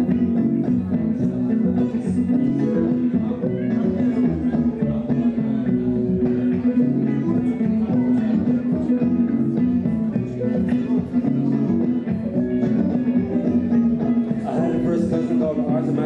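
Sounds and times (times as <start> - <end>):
looped guitar folk tune: 0.0 - 16.0.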